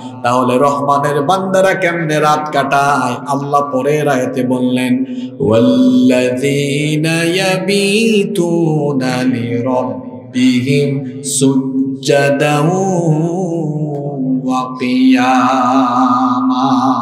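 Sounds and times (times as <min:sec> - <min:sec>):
man chanting through microphone: 0:00.0 - 0:17.0.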